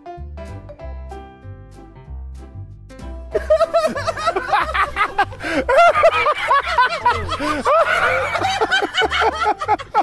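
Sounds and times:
person laughing: 3.3 - 10.0.

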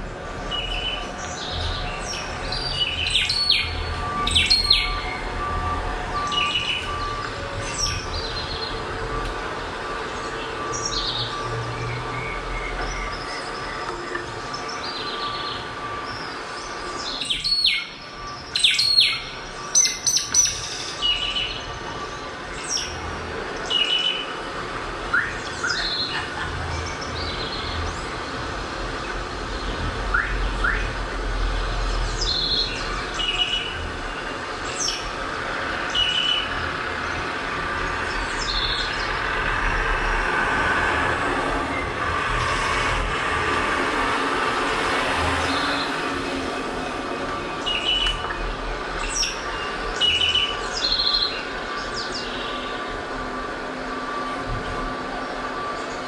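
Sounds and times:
birds chirping: 0.1 - 40.3, 44.7 - 56.0.

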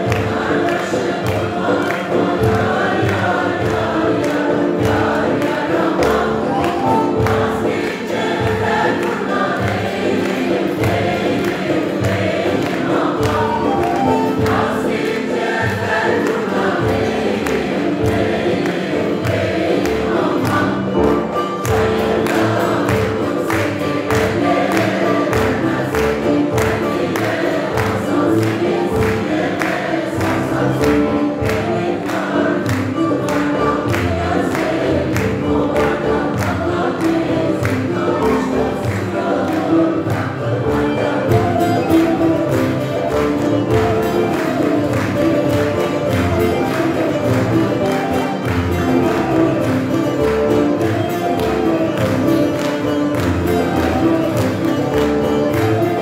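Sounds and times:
folk ensemble with percussion: 0.0 - 56.0
mixed choir singing a folk song: 0.0 - 56.0.

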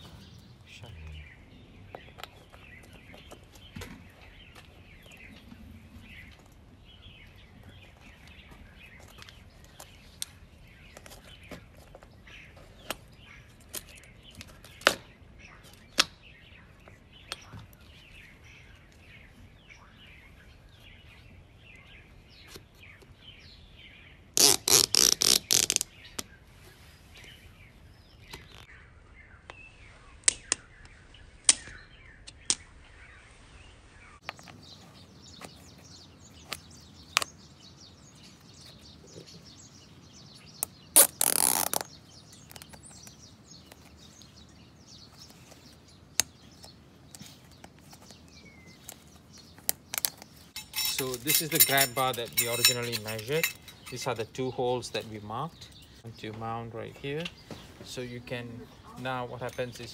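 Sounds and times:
birds chirping: 0.0 - 59.9.

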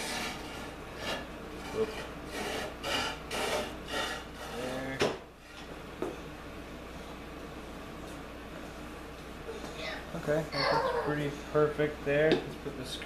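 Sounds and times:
wooden stick scraping wood: 0.0 - 5.8.

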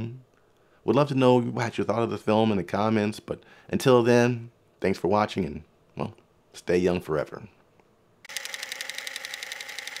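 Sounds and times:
film camera clicking and whirring: 8.2 - 10.0.

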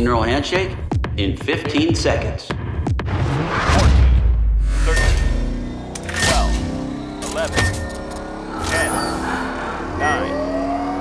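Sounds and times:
rising whine: 4.9 - 11.0.

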